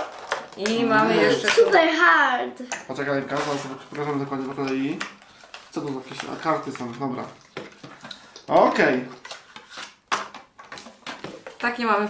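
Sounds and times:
cards rustling: 0:03.0 - 0:11.7.

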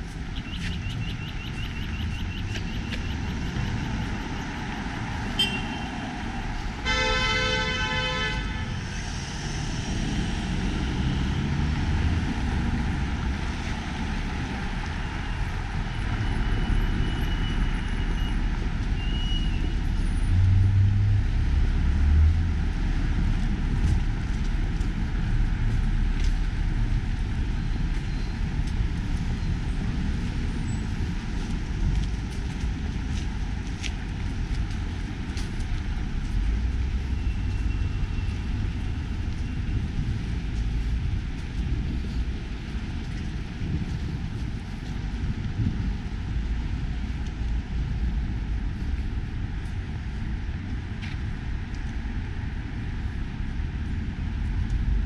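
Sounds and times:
cars driving past: 0:01.4 - 0:44.2
vehicle horn honking: 0:05.4 - 0:05.9, 0:06.8 - 0:08.7.

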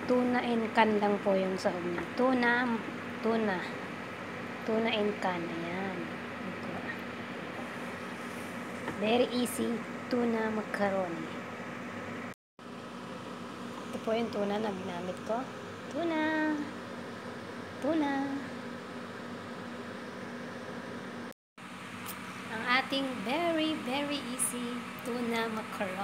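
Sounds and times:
appliance humming: 0:00.0 - 0:26.0.

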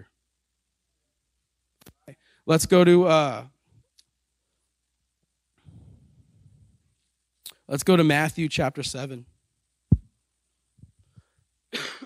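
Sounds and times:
man coughing: 0:11.7 - 0:12.0.

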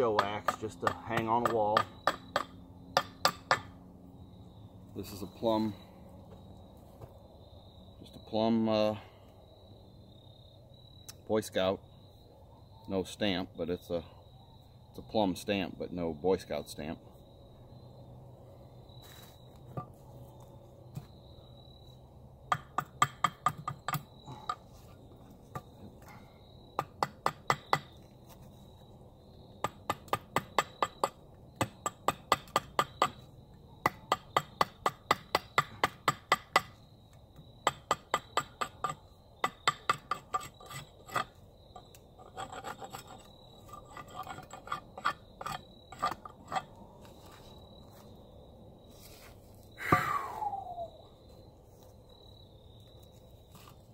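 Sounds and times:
hatchet chopping wood: 0:00.0 - 0:03.8, 0:22.5 - 0:24.6, 0:26.8 - 0:28.0, 0:29.6 - 0:33.2, 0:33.8 - 0:36.8, 0:37.6 - 0:41.3.

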